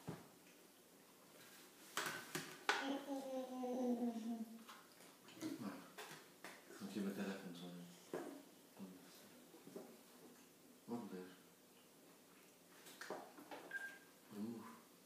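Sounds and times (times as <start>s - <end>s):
small child vocalising: 2.8s - 4.6s.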